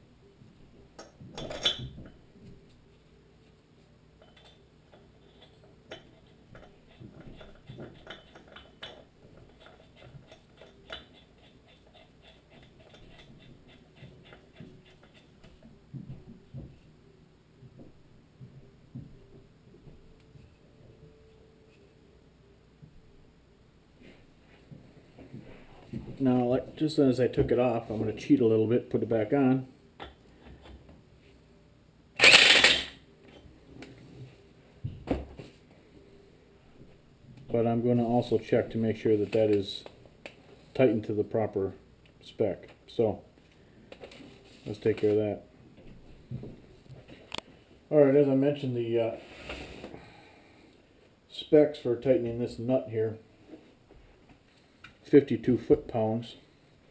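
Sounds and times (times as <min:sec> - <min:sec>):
impact wrench burst: 0:32.2 - 0:33.0.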